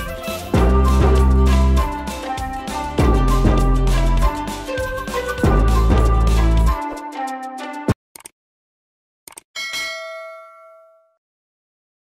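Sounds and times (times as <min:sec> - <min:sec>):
notification bell ding: 0:09.6 - 0:11.2.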